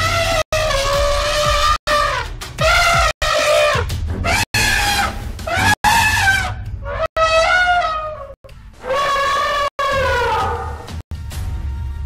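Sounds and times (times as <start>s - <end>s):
high wailing animal cries: 4.6s - 10.9s.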